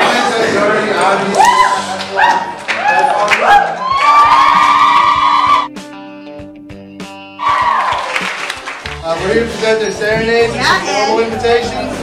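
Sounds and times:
audience shrieking: 0:01.4 - 0:05.7.

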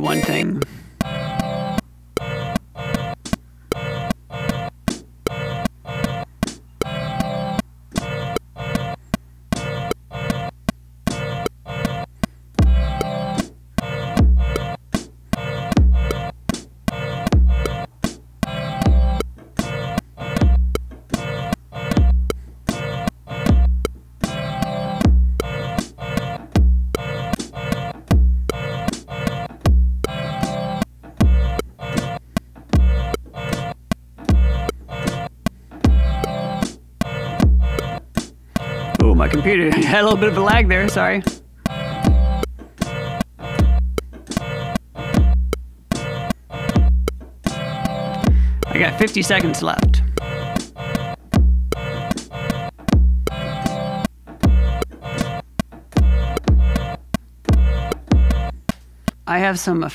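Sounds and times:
deep kick drum: 0:28.1 - 0:28.5.

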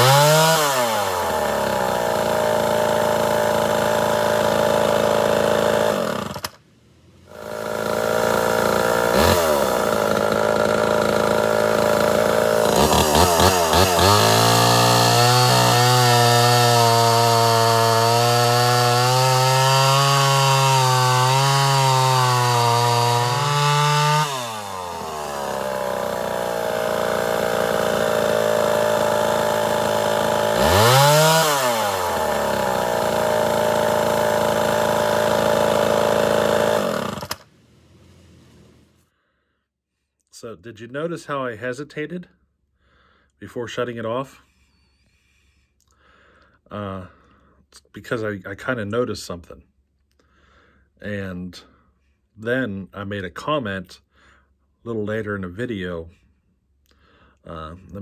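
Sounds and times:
chainsaw cutting log: 0:00.0 - 0:38.9.

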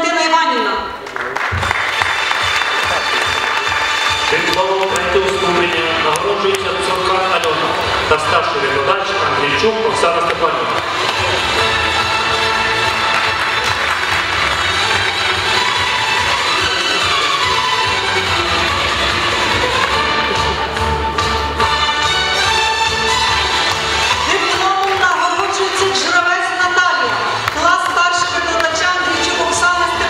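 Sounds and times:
music playing: 0:00.9 - 0:30.0
audience applauding: 0:01.0 - 0:30.0.

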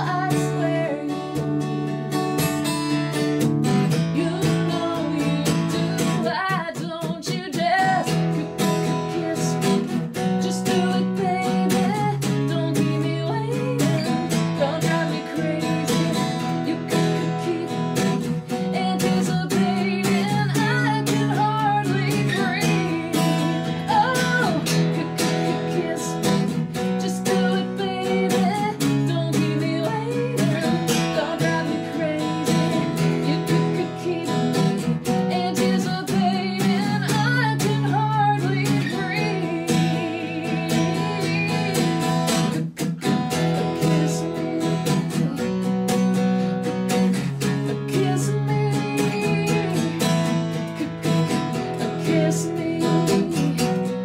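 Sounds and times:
strummed acoustic guitar: 0:00.0 - 0:54.0
woman singing: 0:00.0 - 0:54.0.

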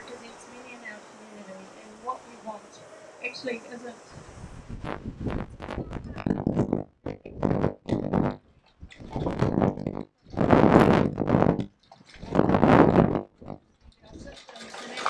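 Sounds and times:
woman speaking over loudspeaker: 0:00.0 - 0:04.0.

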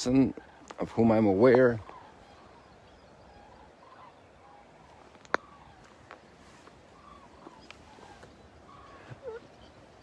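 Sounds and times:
faint bird calls: 0:00.0 - 0:10.0.

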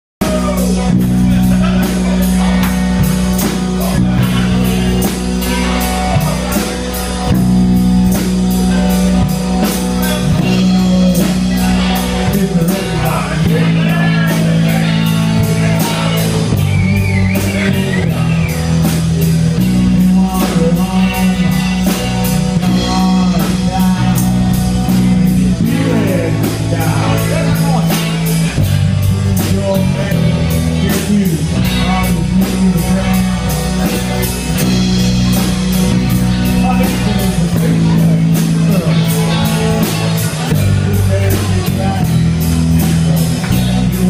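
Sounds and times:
bass guitar: 0:00.2 - 0:44.0
drum kit and cymbals: 0:00.2 - 0:44.0
electric guitar: 0:00.2 - 0:44.0
rock band playing: 0:00.2 - 0:44.0.

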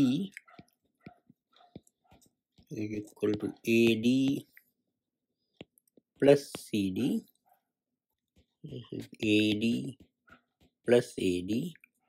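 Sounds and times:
person speaking: 0:00.0 - 0:00.5, 0:02.6 - 0:04.7, 0:05.7 - 0:07.4, 0:08.6 - 0:10.1, 0:10.8 - 0:11.9
stylus tapping tablet screen: 0:00.0 - 0:04.6, 0:05.4 - 0:07.2, 0:08.1 - 0:11.2.

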